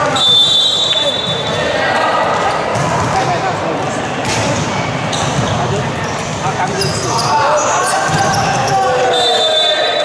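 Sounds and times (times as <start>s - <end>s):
voices echoing in a gym: 0.0s - 10.0s
referee's whistle blast: 0.1s - 1.5s, 8.5s - 10.0s.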